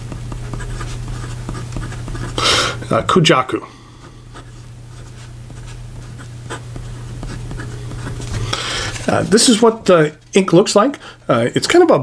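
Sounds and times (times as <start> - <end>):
pen scratching on paper: 0.0 - 2.4, 4.0 - 9.5
steady low hum: 0.0 - 12.0.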